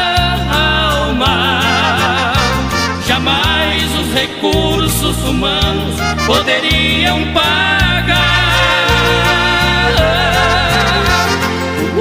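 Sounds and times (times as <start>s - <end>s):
gospel hymn music: 0.0s - 12.0s.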